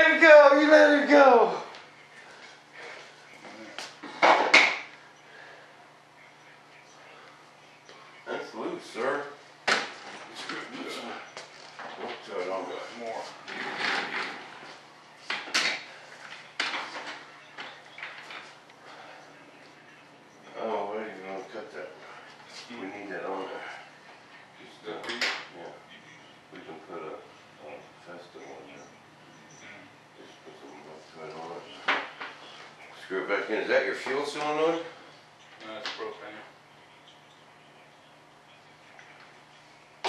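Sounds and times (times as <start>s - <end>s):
quiet indistinct talk: 1.6s - 40.0s.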